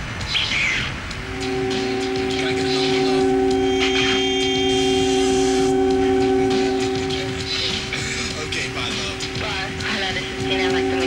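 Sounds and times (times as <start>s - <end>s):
trance music synth chord: 1.2s - 11.0s.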